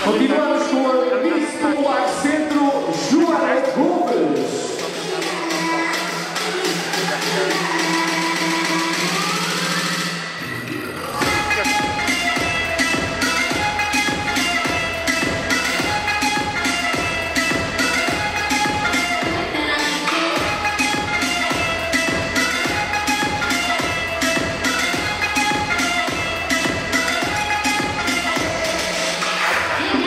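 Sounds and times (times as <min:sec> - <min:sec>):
electronic dance music: 0:00.0 - 0:30.0.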